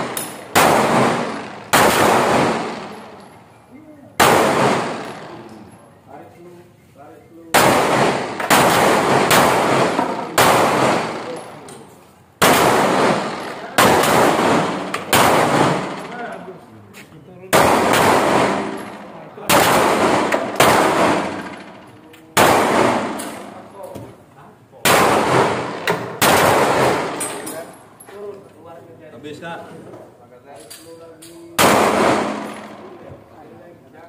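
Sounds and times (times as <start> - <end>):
handgun shots with echo: 24.9 - 27.6, 31.6 - 33.1.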